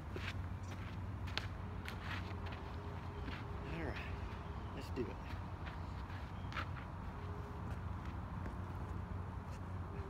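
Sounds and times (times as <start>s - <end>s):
light footsteps: 0.0s - 9.9s.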